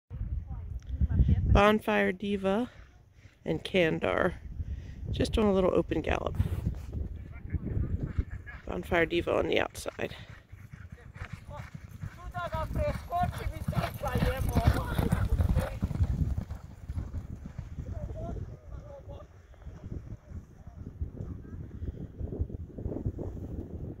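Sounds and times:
horses galloping on dirt: 6.6 - 21.5.

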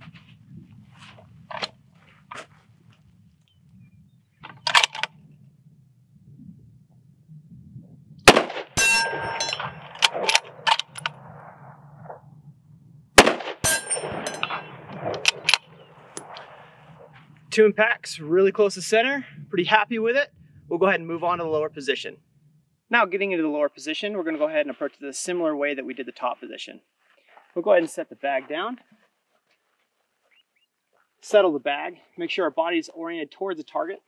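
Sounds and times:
rifle bolt clicks: 4.5 - 5.1
rifle shots with echo: 8.2 - 11.8, 13.2 - 16.7.

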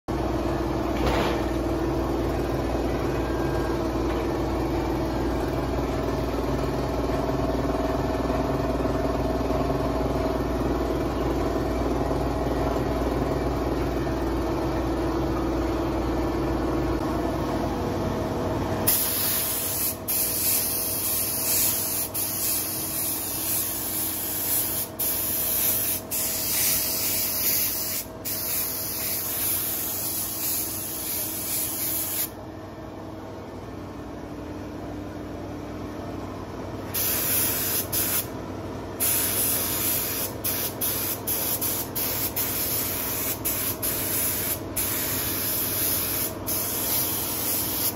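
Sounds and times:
low mechanical hum: 0.1 - 47.9
spray gun hissing: 18.9 - 32.3, 37.0 - 38.3, 39.0 - 47.9.

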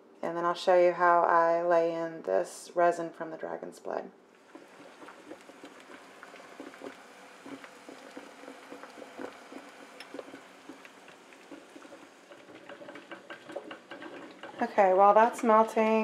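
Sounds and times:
water bubbling and ticking: 4.4 - 16.0.

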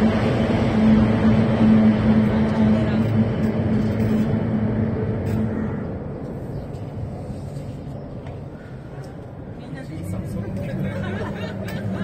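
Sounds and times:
outboard engines droning: 0.0 - 12.0.

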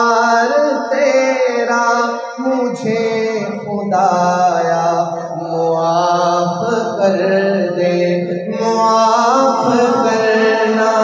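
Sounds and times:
man singing devotional poem: 0.0 - 11.0.

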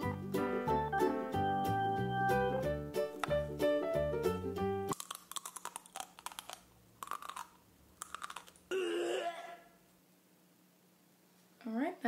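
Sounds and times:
person chewing crunchy food: 4.9 - 9.6.

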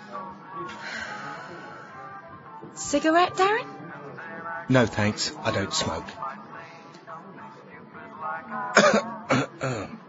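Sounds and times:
man clearing his throat: 8.8 - 10.0
man coughing: 8.8 - 10.0.

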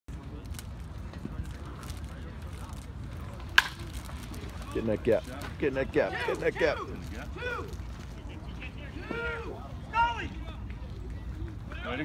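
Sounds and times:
baseball bat cracking ball: 3.5 - 3.9.

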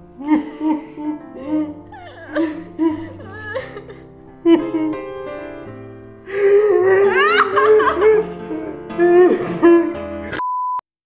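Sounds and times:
music: 0.0 - 10.4.

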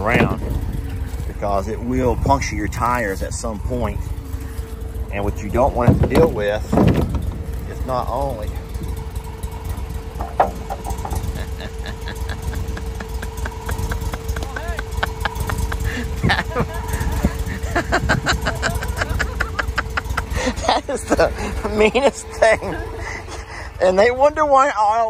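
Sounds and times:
utility vehicle engine running: 0.0 - 25.0.

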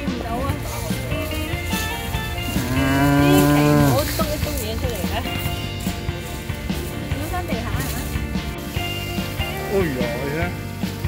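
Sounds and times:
cow mooing: 2.4 - 4.2.

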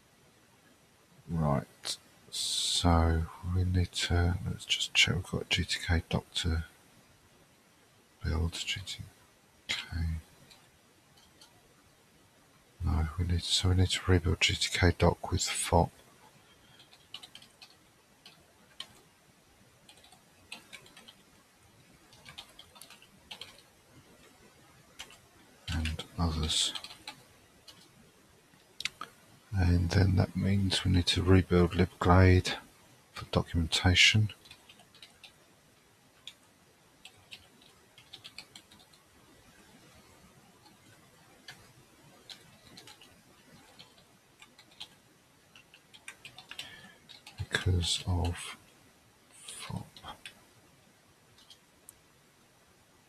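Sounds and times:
man's voice: 1.3 - 6.6, 8.3 - 9.0, 9.7 - 10.2, 12.8 - 15.9, 25.7 - 26.8, 29.6 - 32.6, 33.2 - 34.3, 47.4 - 48.6, 49.5 - 50.2
computer keyboard clicks: 16.8 - 19.0, 19.9 - 21.2, 22.1 - 23.7, 26.8 - 27.9, 37.0 - 39.0, 42.2 - 47.4, 51.4 - 51.6.

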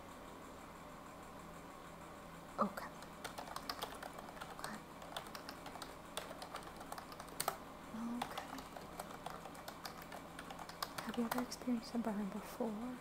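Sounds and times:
fan hiss: 0.0 - 13.0
keyboard typing: 2.8 - 12.0.

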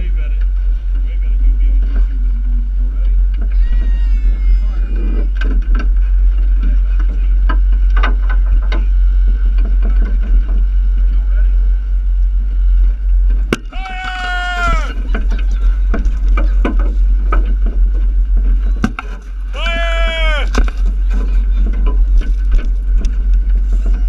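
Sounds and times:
boat engine rumble: 0.0 - 24.0
high call: 13.7 - 15.0, 19.5 - 20.6
faint voices: 13.7 - 16.0, 19.5 - 20.6.

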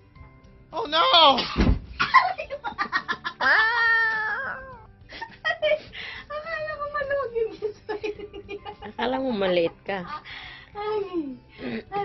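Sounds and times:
woman wailing cry: 3.3 - 4.9.

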